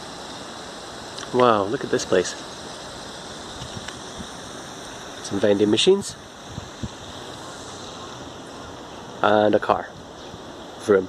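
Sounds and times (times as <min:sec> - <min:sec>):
fountain spray splashing on water: 0:00.0 - 0:11.0.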